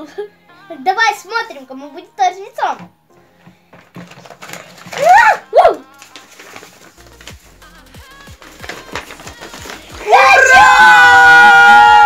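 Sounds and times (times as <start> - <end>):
background music with steady beat: 0.0 - 12.0
loud squeal-like calls: 10.0 - 12.0.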